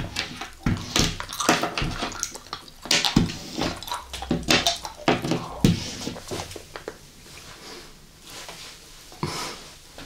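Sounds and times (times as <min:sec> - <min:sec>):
gummy candy chewing: 0:00.0 - 0:07.0
lips smacking and sucking: 0:00.4 - 0:07.6.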